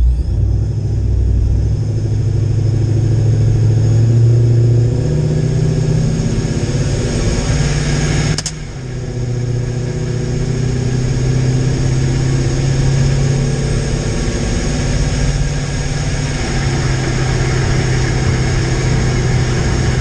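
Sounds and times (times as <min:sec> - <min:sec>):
engine running at low speed: 0:00.0 - 0:20.0
short click: 0:08.3 - 0:08.6.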